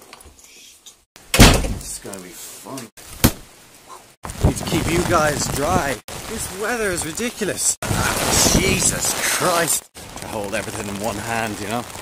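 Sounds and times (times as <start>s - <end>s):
door thud: 1.3s - 1.9s, 3.2s - 3.4s.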